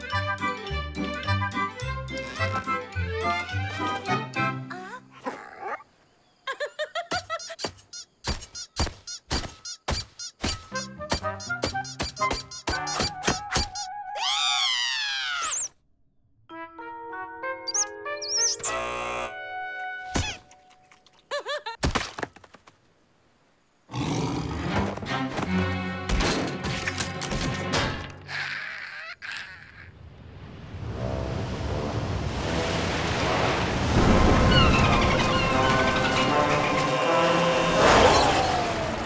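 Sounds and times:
cartoon music: 0.0 - 4.8, 9.7 - 14.5, 16.5 - 19.5.

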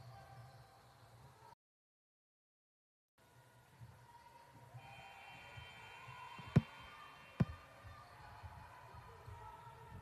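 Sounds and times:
faint gym background noise: 0.0 - 1.6, 3.2 - 10.0.

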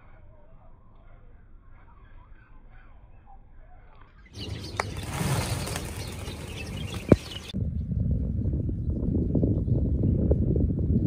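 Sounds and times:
high bird chirps: 0.4 - 7.6
birds' wingbeats taking off: 4.4 - 7.6
low steady rumble: 4.9 - 11.0.

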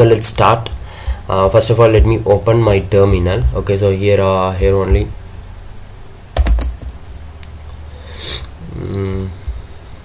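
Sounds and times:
computer keyboard typing: 6.4 - 6.8.

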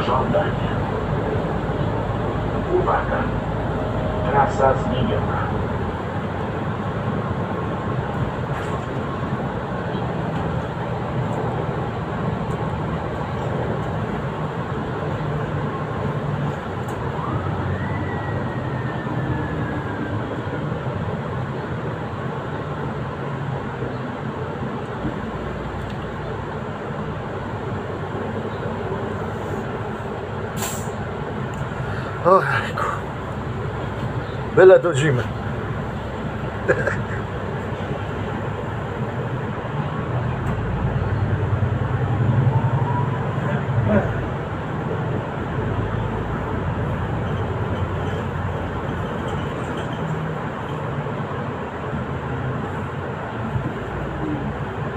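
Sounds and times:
bus engine and road drone: 0.0 - 54.9.

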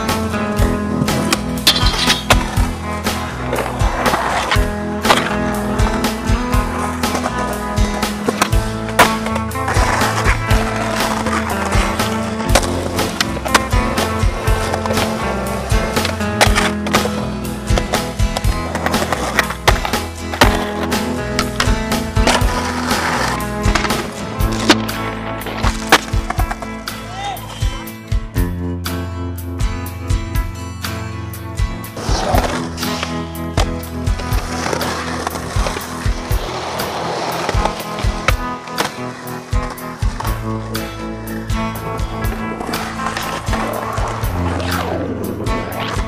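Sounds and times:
music soundtrack: 0.0 - 46.0
skateboard wheels rolling: 0.2 - 27.8, 31.9 - 46.0
skateboard clacking on ground: 0.9 - 2.6.

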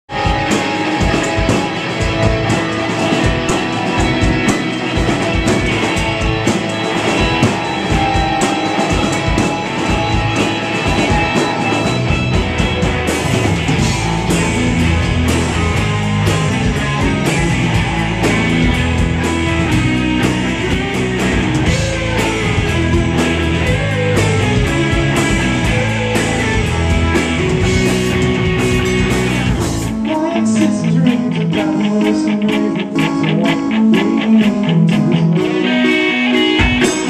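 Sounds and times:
electric guitar playing: 0.1 - 37.0
live rock band playing: 0.1 - 37.0.

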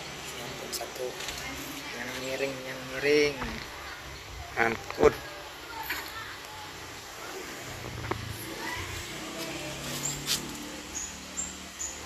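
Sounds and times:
bird chirps: 9.9 - 12.0.

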